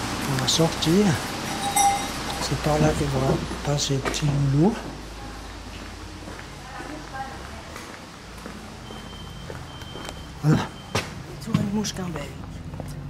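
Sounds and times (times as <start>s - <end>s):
distant voices: 0.0s - 13.0s
footsteps on concrete: 5.7s - 8.7s.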